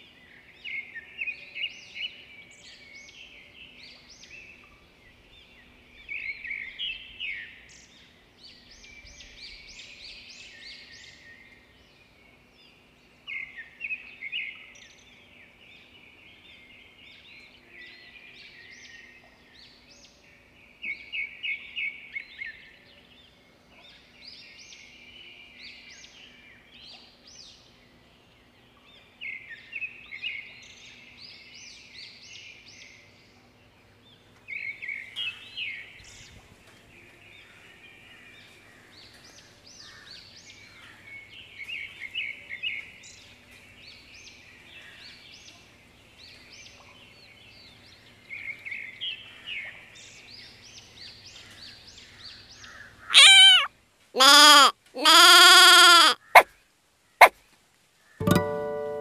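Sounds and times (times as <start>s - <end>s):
bird chirping: 53.1s - 56.5s.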